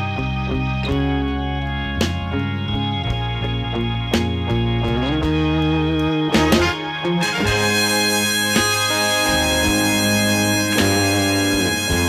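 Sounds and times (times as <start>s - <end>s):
live band droning chords: 0.0s - 12.0s.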